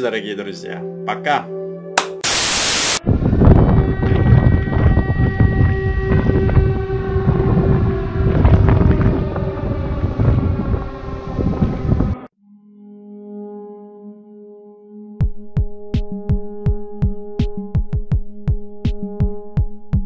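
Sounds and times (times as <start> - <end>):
held horn-like tone: 2.3 - 12.3
loud dense low rumble: 3.0 - 12.3.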